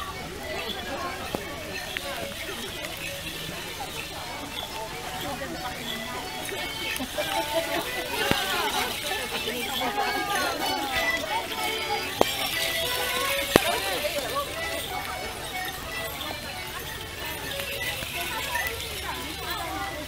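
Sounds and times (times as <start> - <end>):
small wind instruments playing: 0.0 - 20.0
voices and chatter: 0.0 - 20.0.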